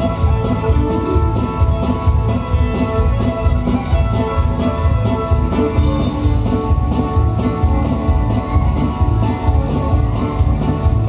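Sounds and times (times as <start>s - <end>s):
live band square-dance tune: 0.0s - 11.0s.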